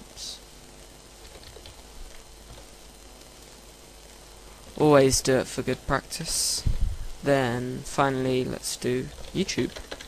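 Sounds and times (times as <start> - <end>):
low hiss and hum: 0.0 - 10.0
computer keyboard keys clicking: 1.2 - 1.8, 9.1 - 10.0.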